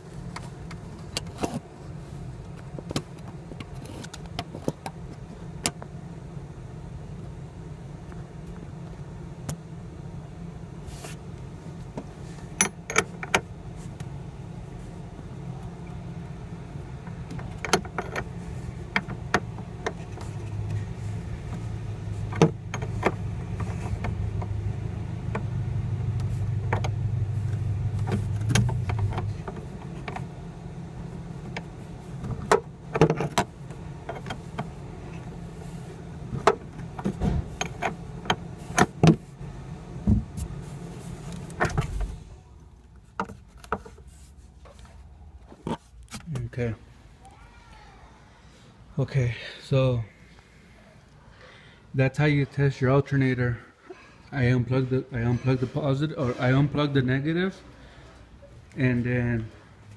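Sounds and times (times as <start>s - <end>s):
car engine idling: 11.4s - 43.6s.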